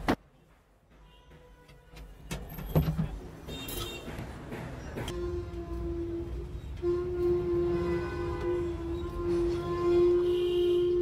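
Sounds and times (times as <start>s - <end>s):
faint street noise: 0.0s - 11.0s.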